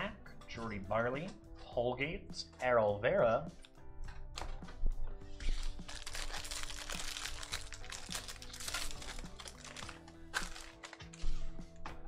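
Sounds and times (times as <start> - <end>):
background music with held notes: 0.0 - 12.0
foil wrapper crinkling: 5.4 - 11.4.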